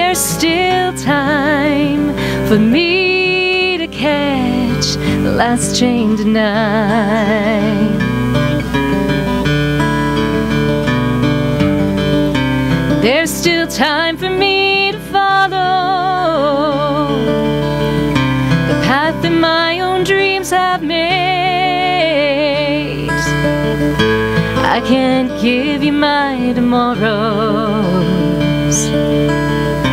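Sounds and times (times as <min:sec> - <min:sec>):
woman singing with vibrato: 0:00.0 - 0:08.9, 0:12.9 - 0:29.2
acoustic guitar: 0:00.0 - 0:29.9.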